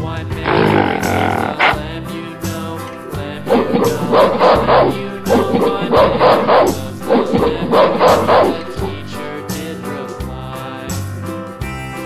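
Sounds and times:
background music: 0.0 - 12.0
gorilla calls: 0.4 - 1.8, 3.4 - 9.3.

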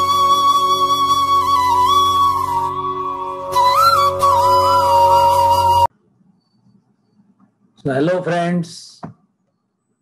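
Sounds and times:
wavering melody over drone: 0.0 - 5.9.

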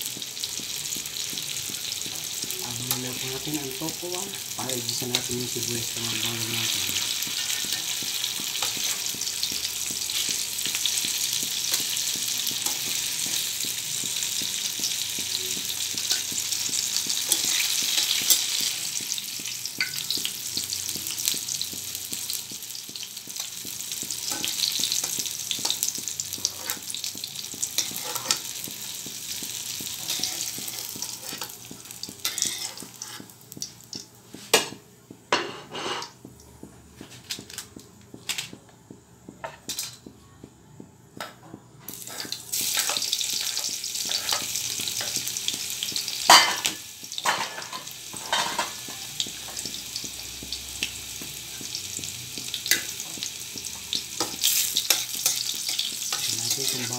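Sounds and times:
tofu sizzling in oil: 0.0 - 34.0, 41.9 - 56.9
spatula scraping wok: 6.6 - 13.6, 27.8 - 28.5, 32.2 - 33.4, 35.4 - 36.2.

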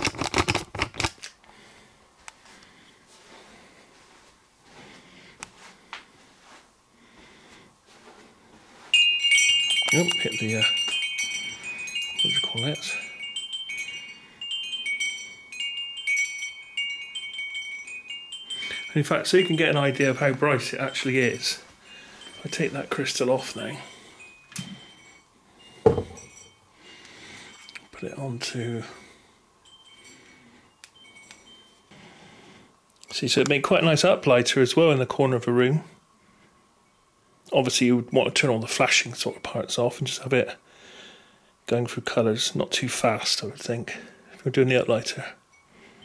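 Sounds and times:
metallic chiming: 8.9 - 32.6, 36.8 - 37.2, 44.9 - 46.0
faint glassy ting: 21.0 - 26.7
crystal knocking on wooden desk: 25.9 - 26.2.

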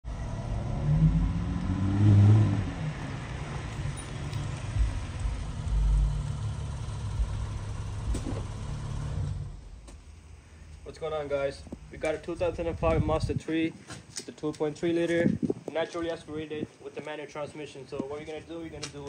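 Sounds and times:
car engine revving and idling: 0.0 - 9.8
low thumps: 0.8 - 10.1.

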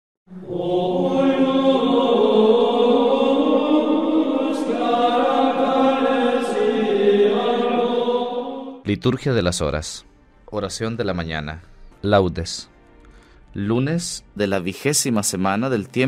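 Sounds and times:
voices chanting long notes: 0.3 - 8.9.

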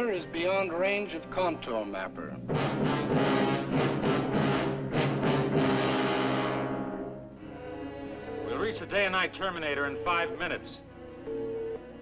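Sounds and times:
timpani strikes: 2.5 - 7.3
dramatic orchestral music: 2.5 - 8.7.

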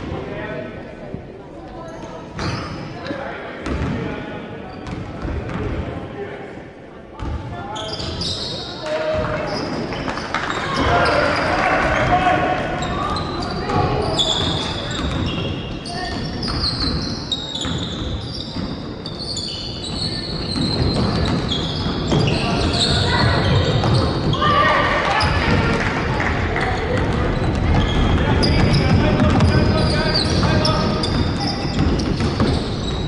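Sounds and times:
players and spectators voices: 0.0 - 33.0
shoes squeaking on floor: 1.7 - 3.1, 7.7 - 25.5, 26.7 - 33.0
ball bouncing on hardwood court: 3.6 - 4.0, 13.7 - 17.0, 17.6 - 18.9, 19.9 - 25.9, 26.6 - 33.0.

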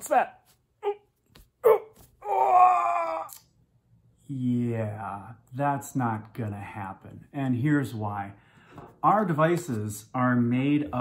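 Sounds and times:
person wailing: 0.8 - 3.4
person crying out: 0.8 - 3.5.

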